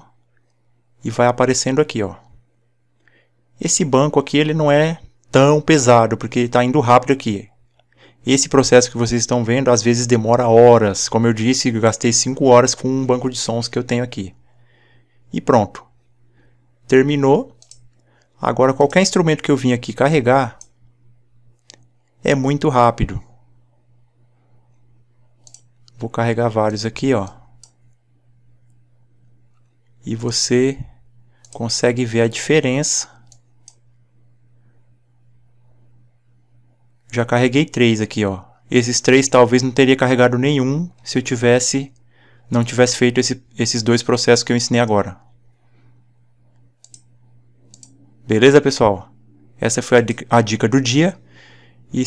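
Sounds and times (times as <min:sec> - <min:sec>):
steady low hum: 0:00.0 - 0:52.0
faint computer mouse clicks: 0:17.6 - 0:19.0, 0:25.4 - 0:26.0, 0:27.6 - 0:28.0, 0:33.2 - 0:33.9, 0:46.5 - 0:48.0.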